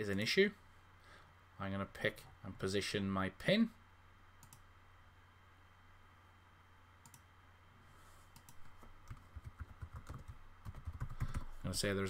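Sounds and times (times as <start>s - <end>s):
low steady hum: 0.0s - 12.0s
computer mouse clicks: 4.4s - 4.6s, 7.0s - 7.3s, 8.3s - 11.5s.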